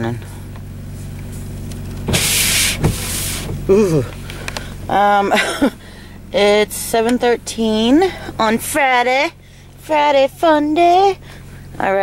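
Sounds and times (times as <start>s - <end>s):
car engine hum: 0.0s - 12.0s
windshield washer spraying: 0.9s - 3.7s
wipers sweeping windshield: 1.0s - 4.6s
brief thump: 2.0s - 3.6s.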